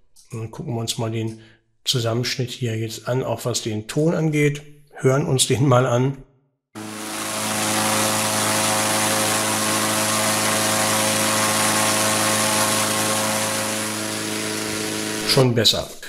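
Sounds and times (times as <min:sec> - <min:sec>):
inflator fan engine running: 0:06.8 - 0:15.6.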